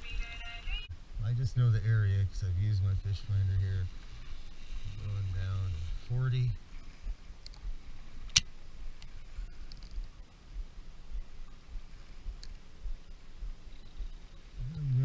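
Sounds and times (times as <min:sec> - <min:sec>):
faint ticks: 0:03.9 - 0:15.0.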